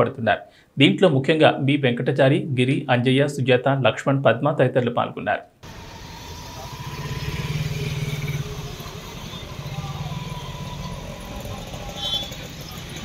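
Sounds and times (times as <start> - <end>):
motorcycle engine running: 5.7 - 13.0.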